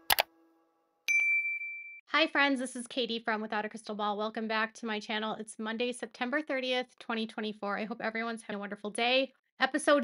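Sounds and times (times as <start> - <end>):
bright ringing ding: 1.1 - 2.0.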